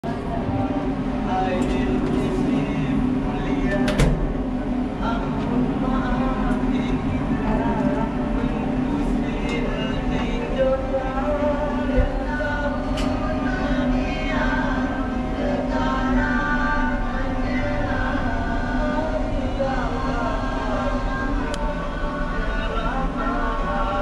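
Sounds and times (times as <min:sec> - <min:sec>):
lift hum: 0:00.0 - 0:24.0
murmur of voices: 0:00.0 - 0:24.0.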